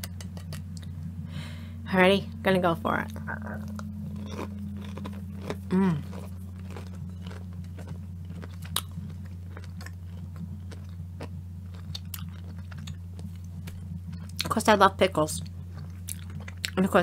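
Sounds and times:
steady low hum: 0.0 - 17.0
person chewing crunchy food: 3.1 - 14.6, 15.4 - 16.8.

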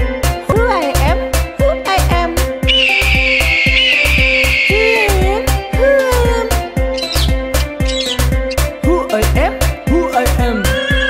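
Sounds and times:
background music with drum beat: 0.0 - 11.0
eagle screeching: 2.7 - 5.3, 6.9 - 8.7, 10.5 - 11.0.

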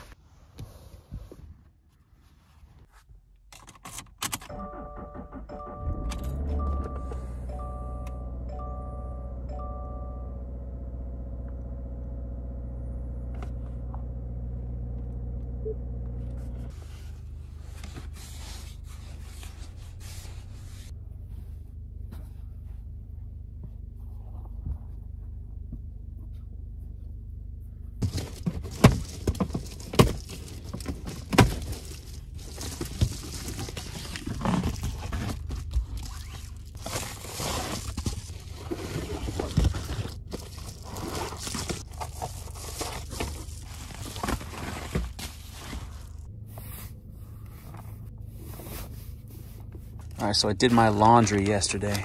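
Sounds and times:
blankets and foil shades crinkling: 28.0 - 46.3.

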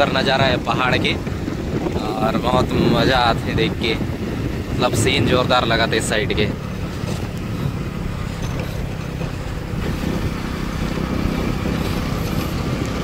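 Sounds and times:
motorcycle engine rumbling: 0.0 - 13.0.

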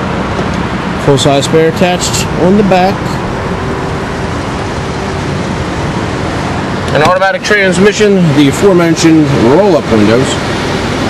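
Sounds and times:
traffic rushing hiss: 0.0 - 11.0.

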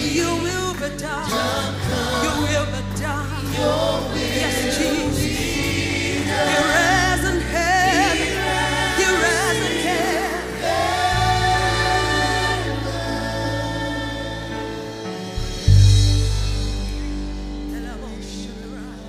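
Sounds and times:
choir and congregation singing: 0.0 - 16.0
sustained low backing chord: 0.0 - 19.0.

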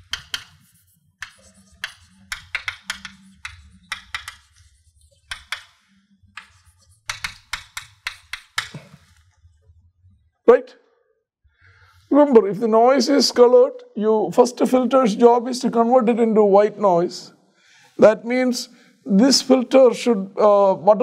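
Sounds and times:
chalk tapping and scraping on blackboard: 0.0 - 9.4.

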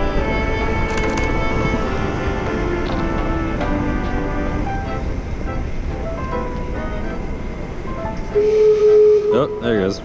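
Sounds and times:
street noise: 0.0 - 10.0
steam whistles: 8.3 - 10.0.

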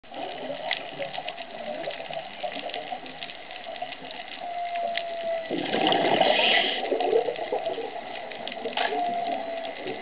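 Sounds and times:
crackle of short clicks: 0.1 - 10.0
whale calls underwater: 0.2 - 10.0.

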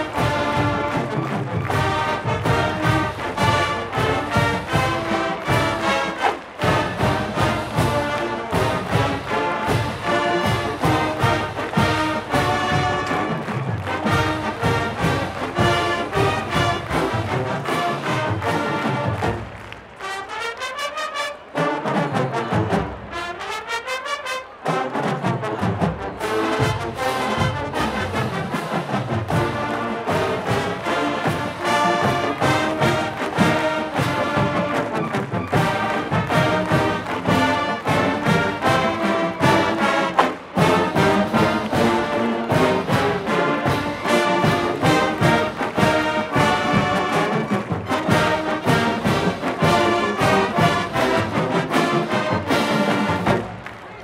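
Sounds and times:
marching band playing: 0.0 - 54.0.

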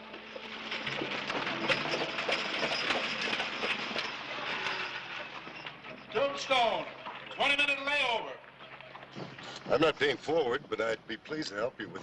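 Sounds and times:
hooves clattering: 0.0 - 11.6.

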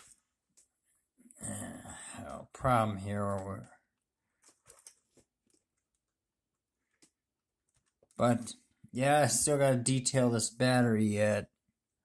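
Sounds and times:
faint clicks of plastic handling: 2.2 - 8.9.

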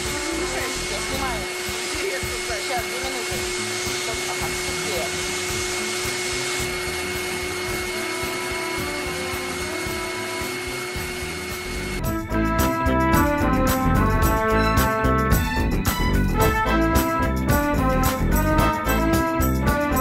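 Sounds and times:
vacuum cleaner running: 0.0 - 14.2.

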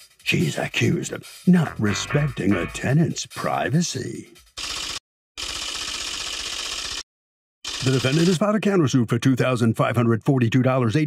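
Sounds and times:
teletype typing clatter: 4.6 - 7.0, 7.7 - 8.4.

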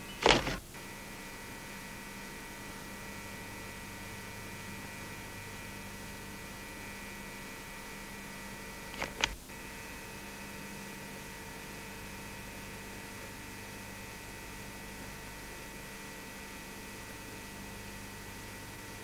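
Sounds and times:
electrical hum and hiss: 0.0 - 19.0
loud short crackle: 0.1 - 0.6
quick clicks: 0.2 - 0.6, 8.9 - 9.4.

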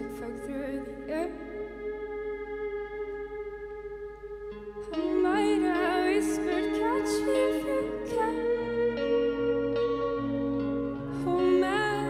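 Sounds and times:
slow live band music: 0.0 - 12.0.

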